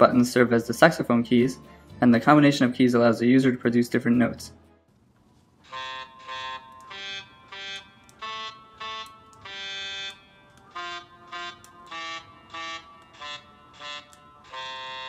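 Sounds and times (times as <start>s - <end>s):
synthesized saxophone melody: 5.6s - 15.0s.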